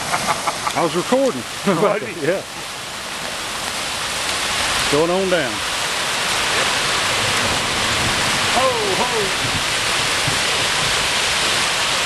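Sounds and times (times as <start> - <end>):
floodwater rushing: 0.0 - 12.0.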